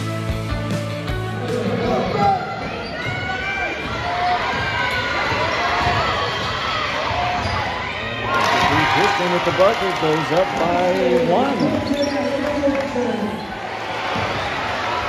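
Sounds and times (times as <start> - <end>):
music: 0.0 - 3.1
crowd voices and shouts: 0.0 - 15.0.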